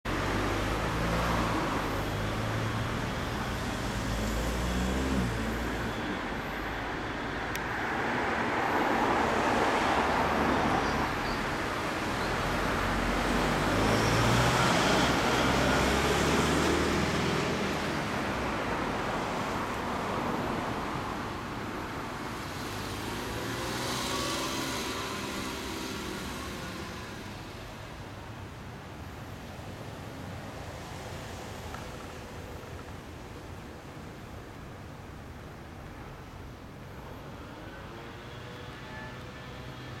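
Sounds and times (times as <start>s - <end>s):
road traffic: 0.0s - 40.0s.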